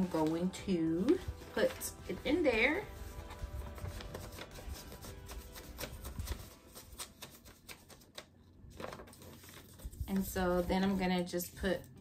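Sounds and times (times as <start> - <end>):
soft background music: 0.0 - 12.0
paper rustling and sliding: 1.0 - 11.9.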